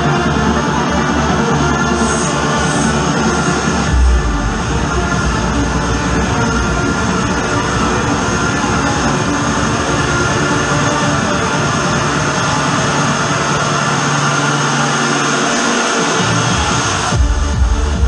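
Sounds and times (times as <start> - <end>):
trance music over sound system: 0.0 - 18.0.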